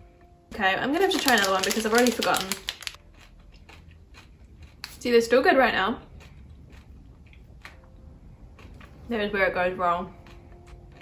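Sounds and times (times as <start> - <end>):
chewing crunchy candy: 1.1 - 5.1, 6.0 - 9.1, 10.1 - 11.0.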